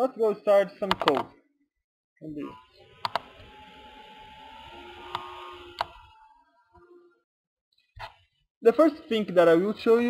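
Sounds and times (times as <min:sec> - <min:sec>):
computer mouse clicking: 0:03.0 - 0:03.3, 0:05.1 - 0:06.0.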